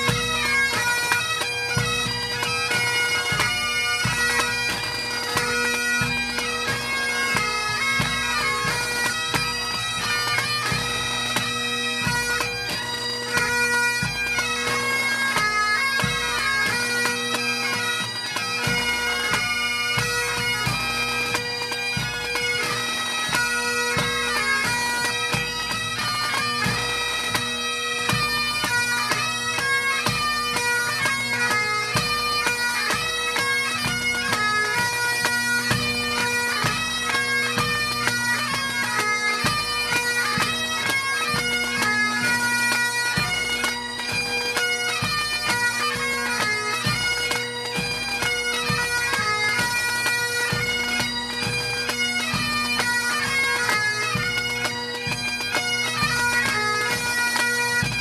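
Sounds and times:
bagpipe melody over drones: 0:00.0 - 0:58.0.

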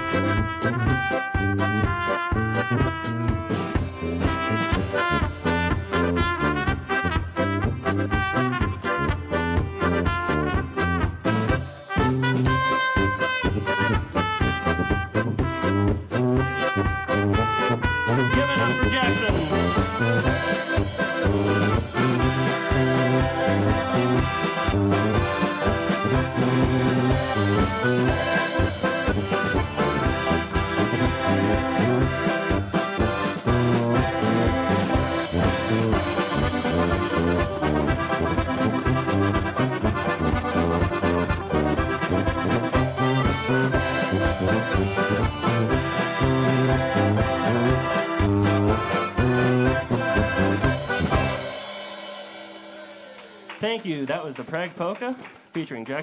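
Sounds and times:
polka band playing: 0:00.0 - 0:56.0.

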